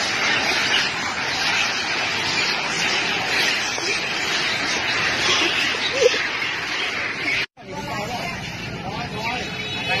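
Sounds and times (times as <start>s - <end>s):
street traffic noise: 0.0s - 10.0s
people talking: 2.4s - 10.0s.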